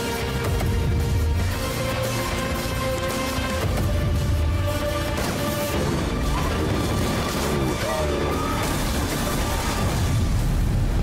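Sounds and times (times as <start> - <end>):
action movie trailer music: 0.0 - 11.0.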